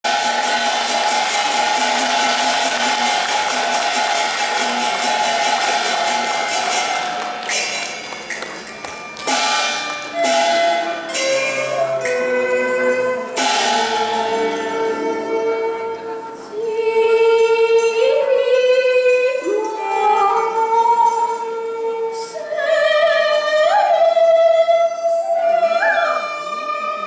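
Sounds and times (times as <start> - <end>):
fast percussion rhythm: 0.0 - 11.6
held melody: 0.0 - 22.2.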